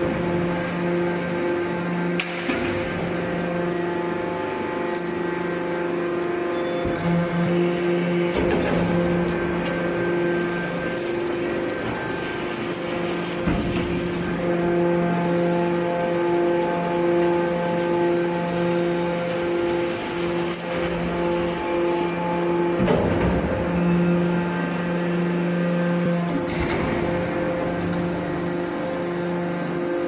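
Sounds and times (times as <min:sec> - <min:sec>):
hydraulic baler humming: 0:00.0 - 0:30.0.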